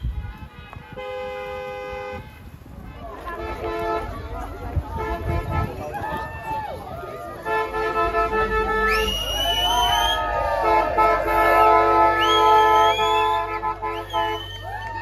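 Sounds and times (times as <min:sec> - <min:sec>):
car horns honking: 0:00.0 - 0:05.9, 0:07.2 - 0:14.7
people cheering and whooping: 0:05.7 - 0:07.5, 0:08.8 - 0:15.0.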